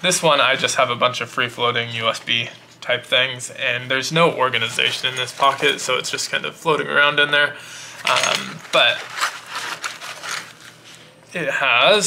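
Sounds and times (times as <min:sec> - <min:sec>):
fabric scraping and rustling: 0:08.1 - 0:11.1.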